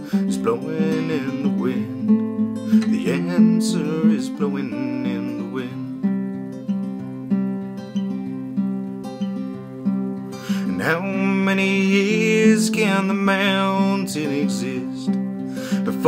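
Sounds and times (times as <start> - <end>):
man singing: 0.0 - 6.1, 10.5 - 16.0
acoustic guitar strumming: 0.0 - 16.0.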